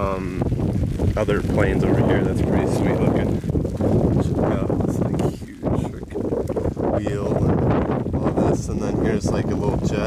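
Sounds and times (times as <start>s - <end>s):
steady rain: 0.0s - 10.0s
wind buffeting microphone: 0.0s - 10.0s.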